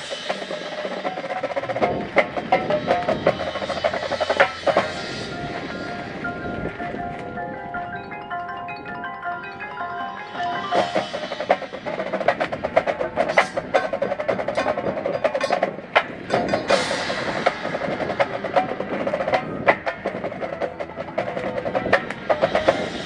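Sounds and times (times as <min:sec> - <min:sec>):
snare and tenor drums: 0:00.0 - 0:07.3, 0:10.4 - 0:23.0
marimba and vibraphone notes: 0:02.5 - 0:23.0
loud crashes: 0:10.4 - 0:20.5.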